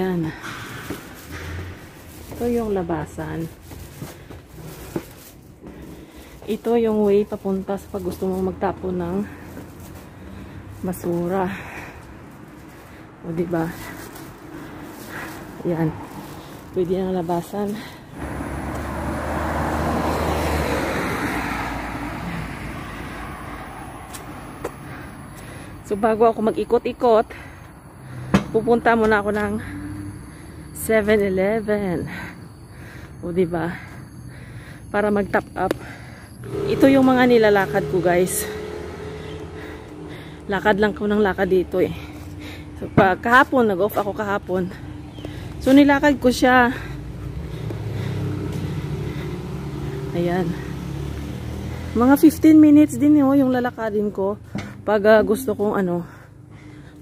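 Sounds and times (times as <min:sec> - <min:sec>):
vehicle passing by: 0:06.0 - 0:26.0, 0:27.3 - 0:56.7
car driving past: 0:18.1 - 0:25.3, 0:35.8 - 0:41.5, 0:46.8 - 0:53.0.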